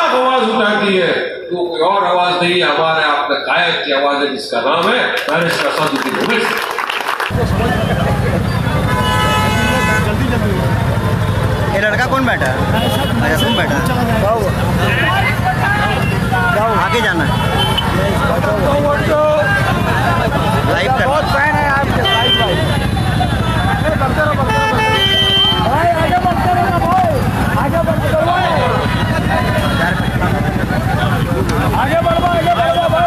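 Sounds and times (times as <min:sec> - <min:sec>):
vehicle horn blaring: 0:07.5 - 0:10.5, 0:12.6 - 0:14.0, 0:14.8 - 0:18.2, 0:21.8 - 0:27.4, 0:28.0 - 0:33.0
people shouting: 0:14.7 - 0:33.0.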